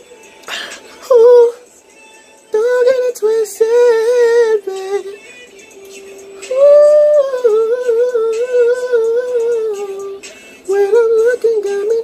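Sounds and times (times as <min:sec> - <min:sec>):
high voice humming: 0:06.4 - 0:12.0.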